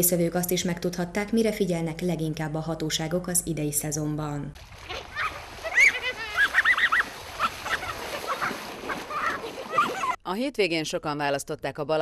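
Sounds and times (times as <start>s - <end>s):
water splashing: 4.5s - 10.2s
people shrieking and laughing: 5.1s - 10.2s.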